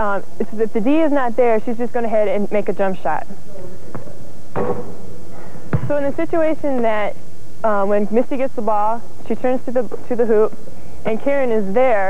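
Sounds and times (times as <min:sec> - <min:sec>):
basketball striking hoop: 0:03.9 - 0:05.0, 0:05.7 - 0:06.0
basketball bouncing on wooden floor: 0:05.7 - 0:06.0.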